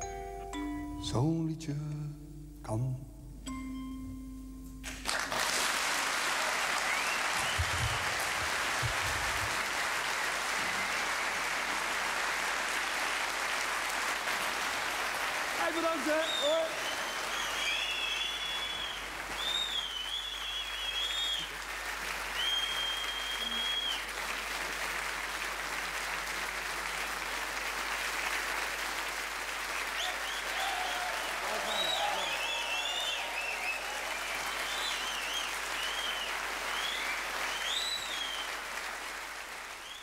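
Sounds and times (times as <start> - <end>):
audience applauding: 4.8 - 40.0
shrill whistles: 6.8 - 8.3, 15.8 - 21.6, 22.3 - 24.1, 29.8 - 38.6
shouts from audience: 15.6 - 19.0, 30.0 - 35.1.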